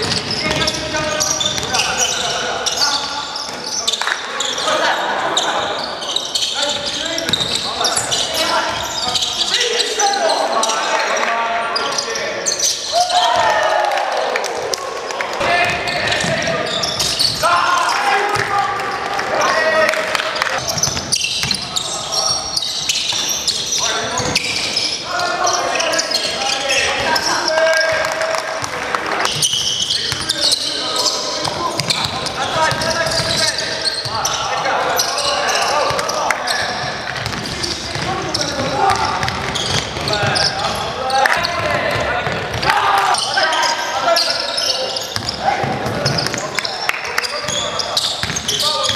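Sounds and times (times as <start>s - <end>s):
basketball bouncing on court: 0.0s - 1.8s, 20.6s - 21.8s, 31.4s - 33.4s, 35.9s - 40.8s, 41.4s - 42.7s, 45.1s - 46.5s, 47.5s - 48.9s
players calling and shouting: 0.0s - 48.9s.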